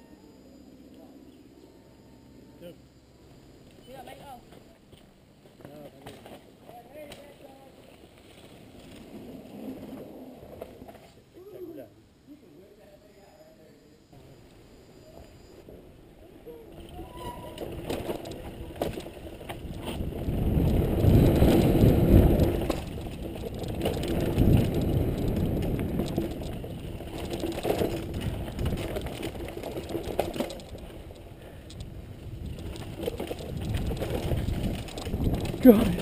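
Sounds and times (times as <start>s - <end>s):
bike rattles and knocks: 16.8s - 36.0s
tyre rumble over dirt: 16.8s - 36.0s.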